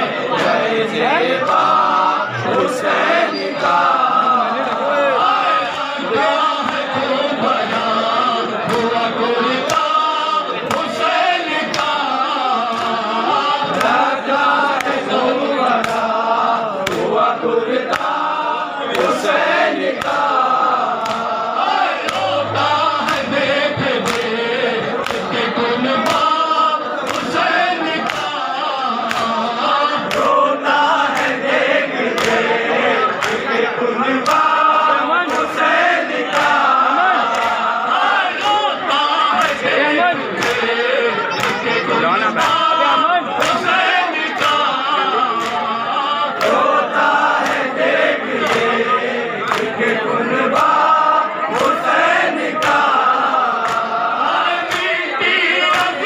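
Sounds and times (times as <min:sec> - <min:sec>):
men chanting in chorus: 0:00.0 - 0:56.0.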